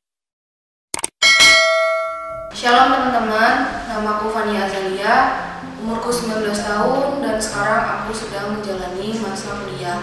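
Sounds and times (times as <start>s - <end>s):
notification bell chime: 1.2s - 2.6s.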